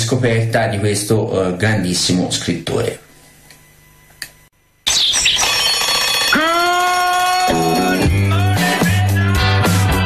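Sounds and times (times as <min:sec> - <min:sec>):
alarm clock bell ringing: 0:05.3 - 0:08.0.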